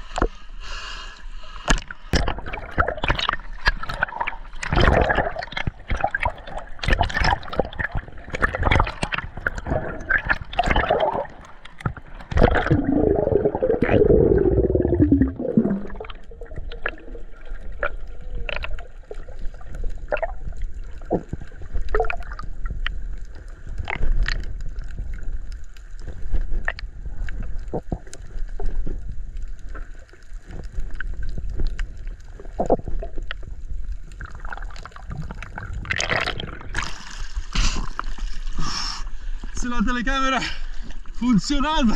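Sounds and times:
underwater water gurgling: 0:00.0 - 0:41.9.

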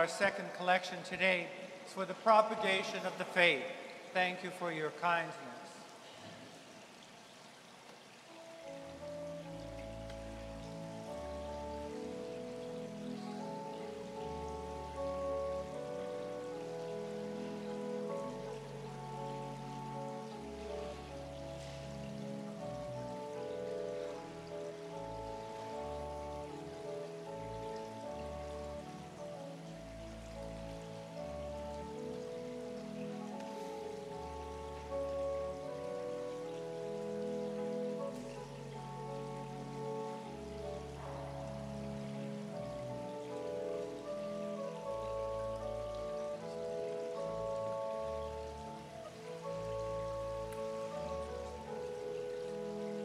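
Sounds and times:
church organ chords: 0:00.0 - 0:05.7, 0:08.3 - 0:53.0.

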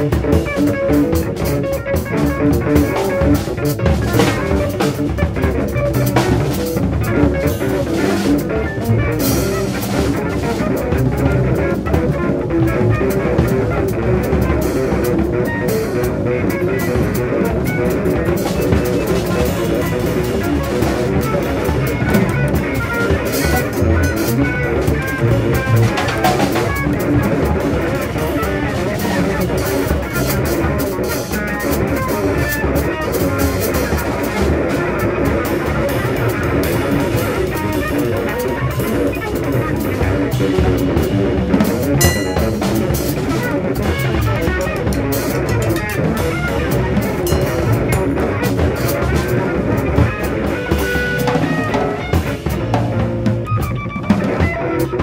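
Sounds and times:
drum kit: 0:00.0 - 0:55.0
electric guitar: 0:00.0 - 0:55.0
double bass: 0:38.6 - 0:53.6.

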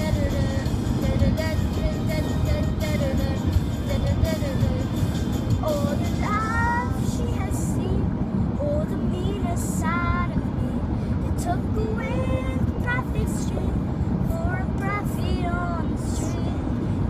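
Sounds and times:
boy singing: 0:00.0 - 0:04.9, 0:05.6 - 0:08.0, 0:08.6 - 0:16.6
car road and engine rumble: 0:00.0 - 0:17.0.

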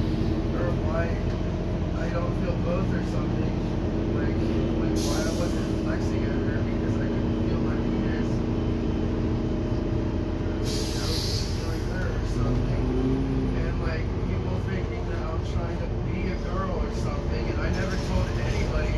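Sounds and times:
bus engine drone: 0:00.0 - 0:18.9
air brake hisses: 0:05.0 - 0:05.8, 0:10.6 - 0:11.9.

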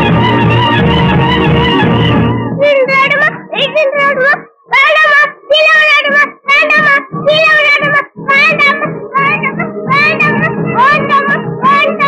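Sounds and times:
light instrumental backing: 0:00.0 - 0:03.6
girl singing wavering notes: 0:00.0 - 0:12.0.

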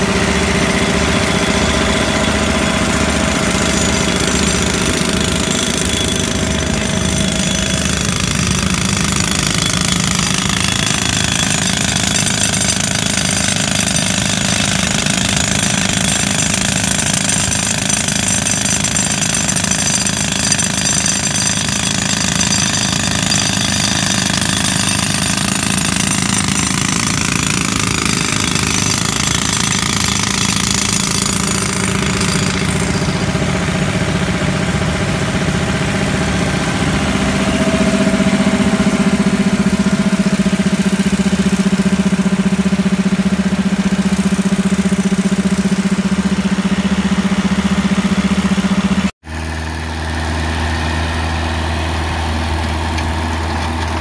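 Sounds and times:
jackhammer hammering into rock: 0:00.0 - 0:54.0.

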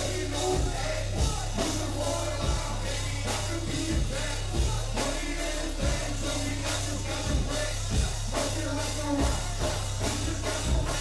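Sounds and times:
heavy bass line: 0:00.0 - 0:11.0.

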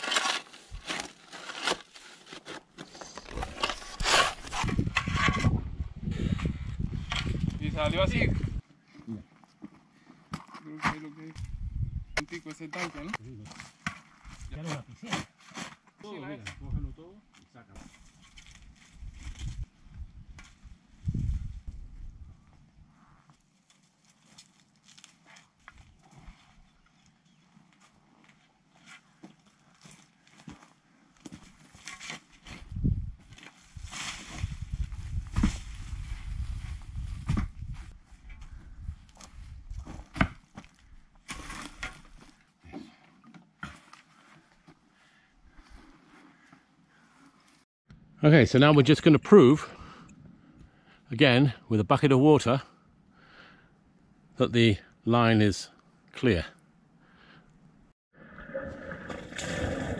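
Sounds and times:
pickaxe knocking and scraping stones: 0:39.8 - 0:42.2.

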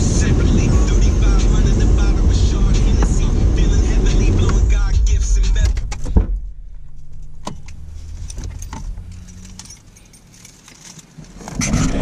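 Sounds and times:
low steady hum: 0:00.0 - 0:10.8
car keys jingling: 0:02.8 - 0:11.6.

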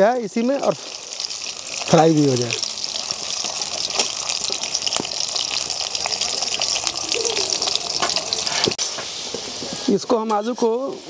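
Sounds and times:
potatoes sizzling in hot oil: 0:00.0 - 0:11.0.

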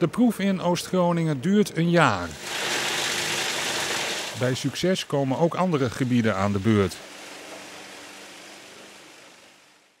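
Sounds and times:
wood chipper running: 0:02.3 - 0:04.6, 0:05.9 - 0:10.0.

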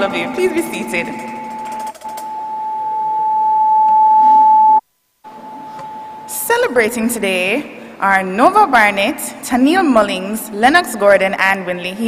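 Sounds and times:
microphone feedback whistle: 0:00.7 - 0:06.5.

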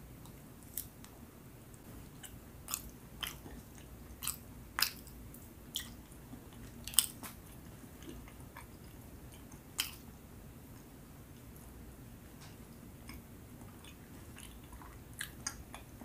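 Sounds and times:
chewing with wet mouth clicks: 0:02.2 - 0:10.1, 0:13.0 - 0:16.0.

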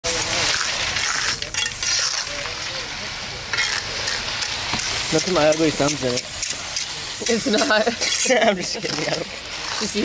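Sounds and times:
wet concrete pouring from hose: 0:00.0 - 0:10.0.

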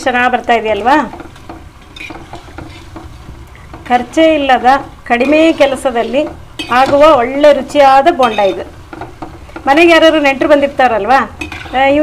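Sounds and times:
oil sizzling: 0:00.0 - 0:12.0
metal skimmer stirring in pan: 0:00.1 - 0:12.0.

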